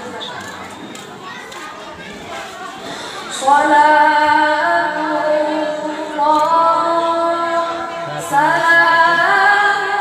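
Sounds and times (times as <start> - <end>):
murmur of voices: 0.0 - 10.0
woman reciting over loudspeaker: 2.9 - 10.0.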